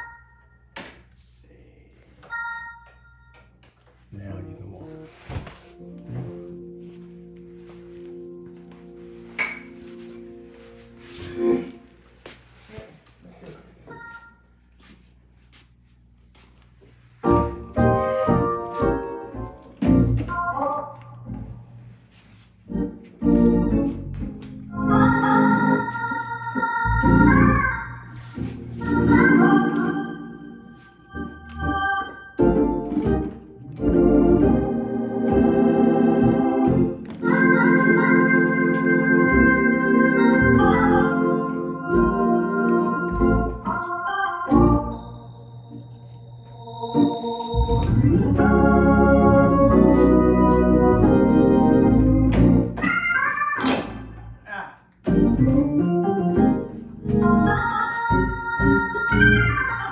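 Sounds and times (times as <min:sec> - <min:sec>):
electric organ playing: 0:00.0 - 0:00.8, 0:05.6 - 0:12.2, 0:13.9 - 0:14.6, 0:17.2 - 0:54.3, 0:55.1 - 0:59.9.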